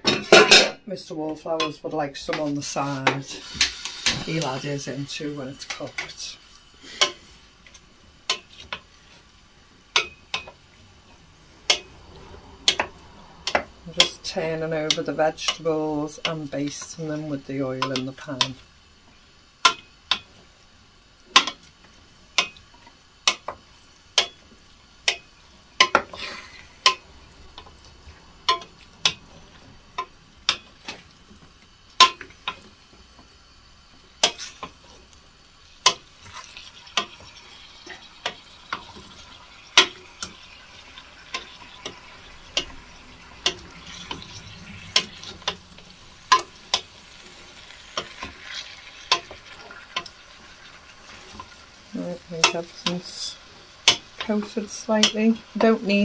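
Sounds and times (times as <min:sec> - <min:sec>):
faint frying sizzle: 0:00.0 - 0:56.0.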